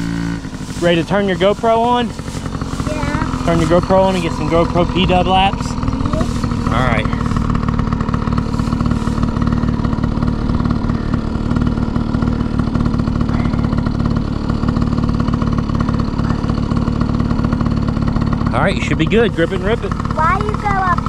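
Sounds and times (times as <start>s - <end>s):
dirt bike engine idling: 0.0s - 21.0s.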